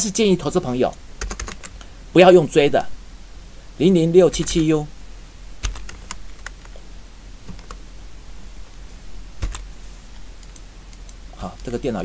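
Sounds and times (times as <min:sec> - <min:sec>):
computer keyboard keystrokes: 0:00.9 - 0:01.7, 0:05.6 - 0:06.7, 0:09.4 - 0:09.6.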